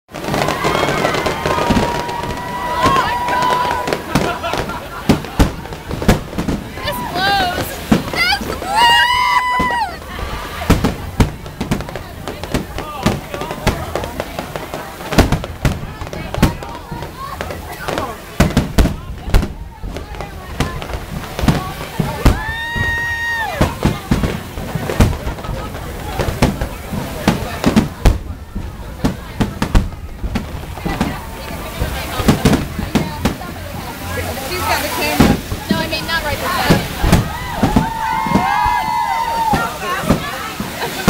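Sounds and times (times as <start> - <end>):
fireworks bangs and booms: 0.1 - 41.0.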